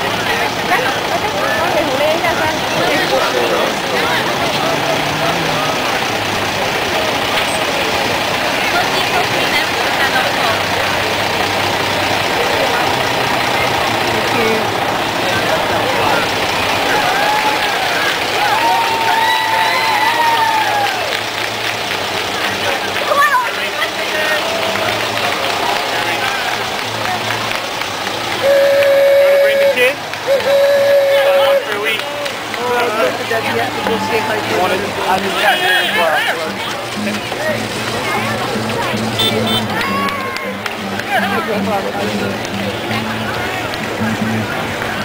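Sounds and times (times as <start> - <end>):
crowd chatter: 0.0 - 45.0
diesel truck engine rolling past: 0.0 - 45.0
horn steady note: 28.3 - 32.0, 34.7 - 43.0.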